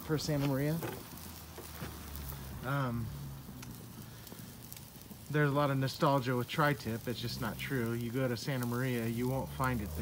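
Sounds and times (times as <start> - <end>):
wood fire crackling: 0.0 - 10.0.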